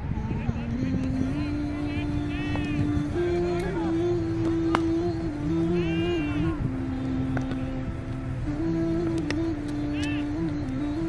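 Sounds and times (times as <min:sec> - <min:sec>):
distant shouting voices: 0:00.0 - 0:11.0
engine hum: 0:00.0 - 0:11.0
wind rumble on microphone: 0:00.0 - 0:11.0.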